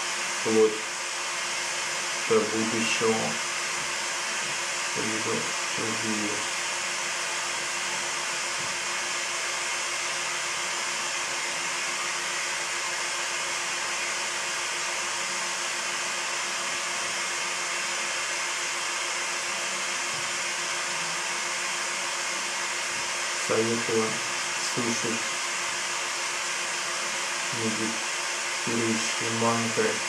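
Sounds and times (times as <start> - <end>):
steady hiss: 0.0 - 30.0
steady low hum: 0.0 - 30.0.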